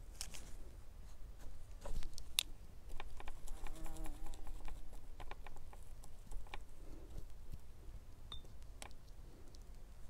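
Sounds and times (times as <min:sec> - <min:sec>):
fly buzzing past: 0:03.6 - 0:04.4
light clicks and taps: 0:08.3 - 0:09.8.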